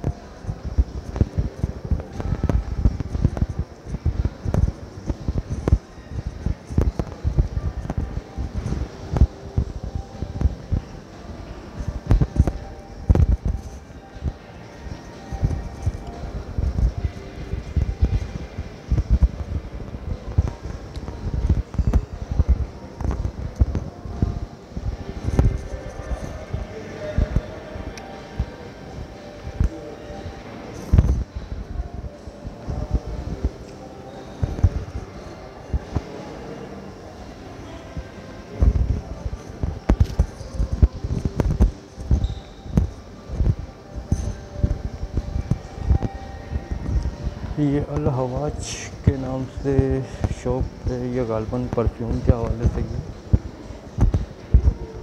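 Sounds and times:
wind noise on microphone: 0.0s - 29.7s, 30.8s - 33.6s, 38.0s - 48.0s, 51.7s - 55.0s.

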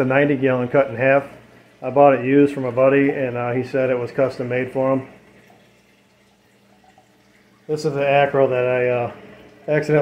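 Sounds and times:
aquarium water trickling: 0.0s - 10.0s.

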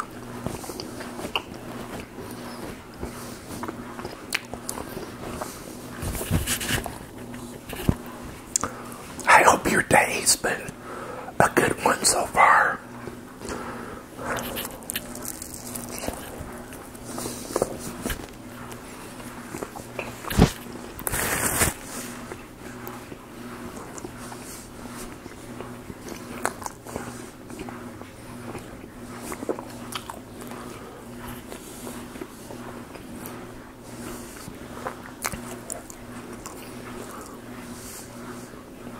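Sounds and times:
chewing sandwich: 0.0s - 9.3s, 12.1s - 38.6s.

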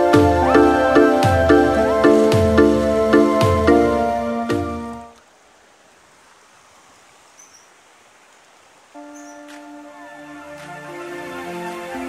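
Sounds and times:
background music: 0.0s - 5.2s, 9.0s - 12.0s
river water rushing over rocks: 0.0s - 7.2s, 7.8s - 12.0s
faint high chirps: 7.3s - 7.7s, 9.1s - 9.5s.

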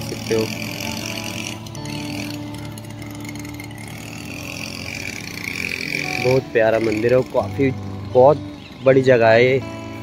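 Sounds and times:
small motorised machine droning: 0.0s - 10.0s.

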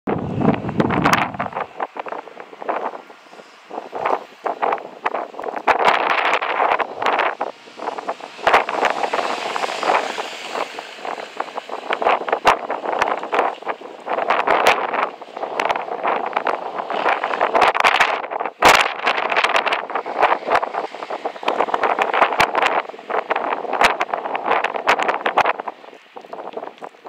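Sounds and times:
wind buffeting microphone: 0.1s - 27.0s.

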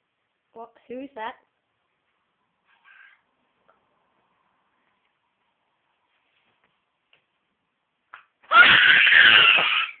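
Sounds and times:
loud scream: 8.5s - 10.0s.

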